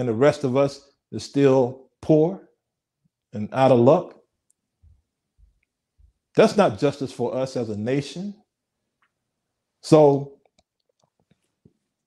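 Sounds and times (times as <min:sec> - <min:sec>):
man speaking: 0:00.0 - 0:02.5, 0:03.3 - 0:04.2, 0:06.4 - 0:08.5, 0:09.8 - 0:10.4.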